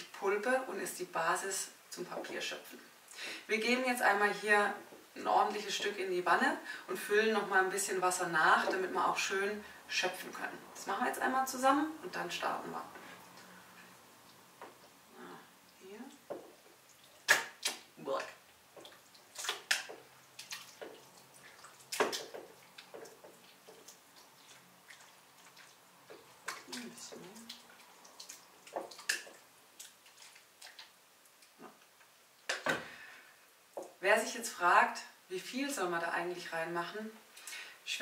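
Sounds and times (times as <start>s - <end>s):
wet pulp plops: 16.3s - 17.9s, 18.7s - 31.0s.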